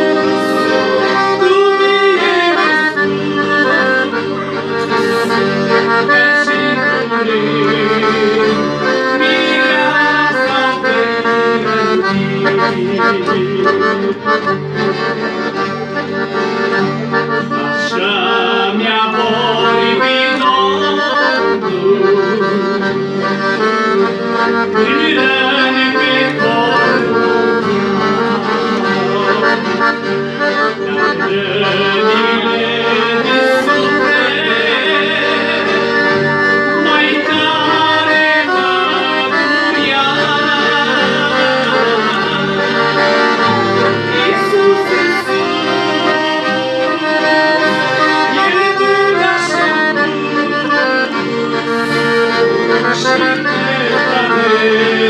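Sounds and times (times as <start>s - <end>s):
piano accordion playing a tune: 0.0s - 55.0s.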